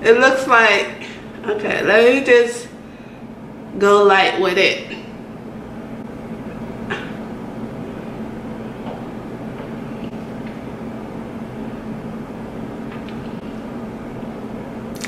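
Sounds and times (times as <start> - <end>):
low background hum: 0.0 - 15.0.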